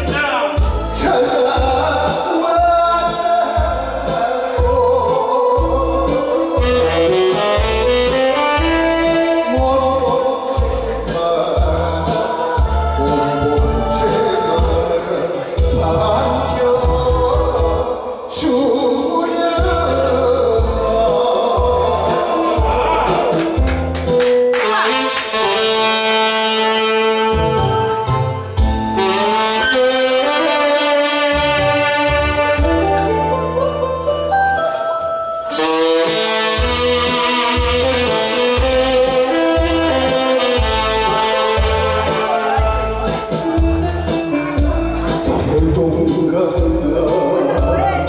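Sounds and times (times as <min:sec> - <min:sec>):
backing track with bass pulse: 0:00.0 - 0:48.0
saxophone melody: 0:00.6 - 0:18.2, 0:19.8 - 0:48.0.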